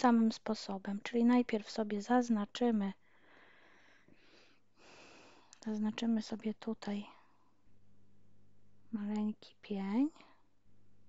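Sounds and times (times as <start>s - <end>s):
faint breathing: 3.0s - 5.6s.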